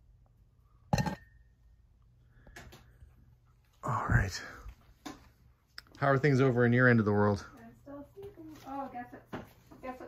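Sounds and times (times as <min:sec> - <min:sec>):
faint handling sounds: 0:07.5 - 0:10.0.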